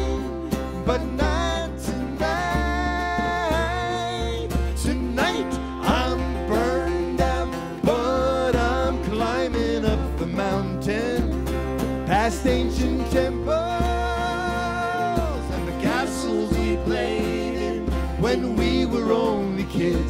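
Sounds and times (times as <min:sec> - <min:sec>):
acoustic guitars playing: 0:00.0 - 0:20.0
hand drum beat: 0:00.0 - 0:20.0.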